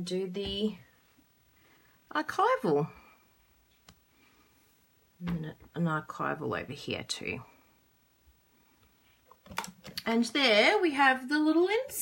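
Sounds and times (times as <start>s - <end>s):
plastic block clicks: 9.4s - 10.0s.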